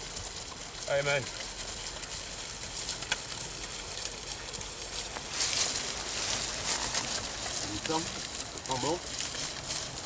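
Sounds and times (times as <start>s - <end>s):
hooves clicking and knocking: 0.0s - 10.0s.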